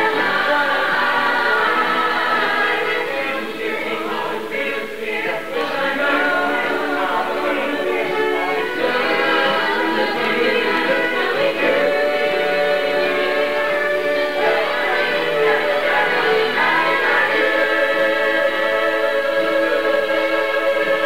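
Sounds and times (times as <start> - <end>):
ensemble singing together: 0.0 - 21.0.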